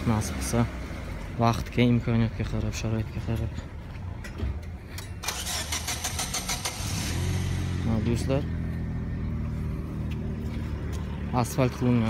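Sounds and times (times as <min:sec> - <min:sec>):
car starter cranking: 0:05.1 - 0:07.6.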